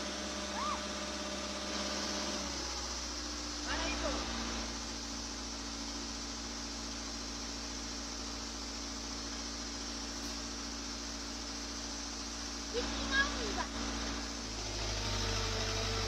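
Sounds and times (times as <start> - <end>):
diesel engine idling: 0.0 - 16.0.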